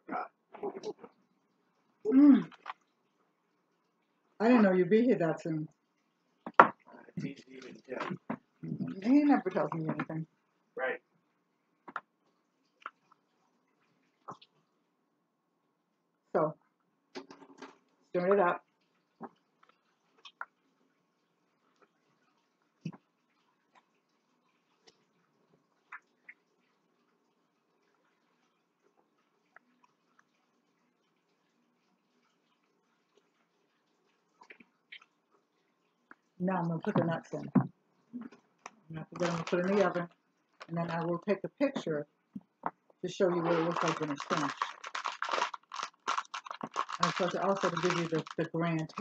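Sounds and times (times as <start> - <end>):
paper towel crinkling and rustling: 39.1 - 40.0, 43.4 - 49.0.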